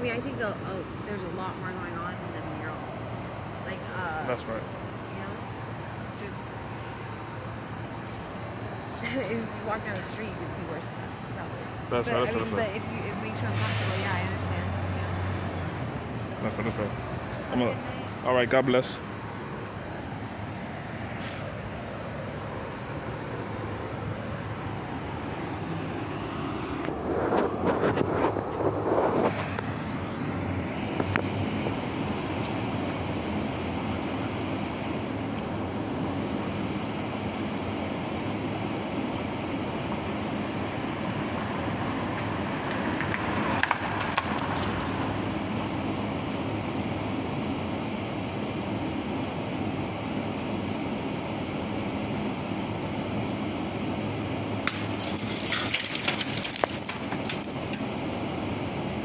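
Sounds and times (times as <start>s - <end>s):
distant city traffic: 0.0s - 59.0s.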